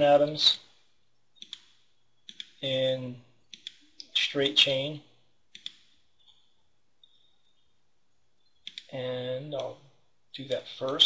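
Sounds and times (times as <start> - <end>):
computer mouse clicking: 1.4 - 2.6, 3.5 - 4.0, 5.5 - 6.4, 8.5 - 8.9.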